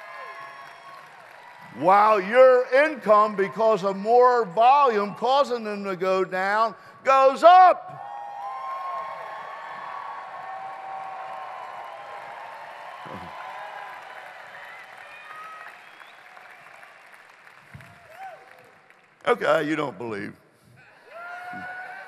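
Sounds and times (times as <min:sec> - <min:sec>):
audience applauding and cheering: 0:00.0 - 0:03.5, 0:08.0 - 0:19.3, 0:21.0 - 0:22.0.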